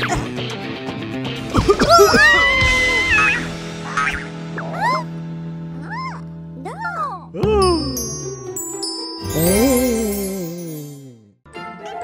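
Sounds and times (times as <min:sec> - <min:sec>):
background music: 0:07.4 - 0:12.0
squeaky character vocalisations: 0:09.2 - 0:11.2.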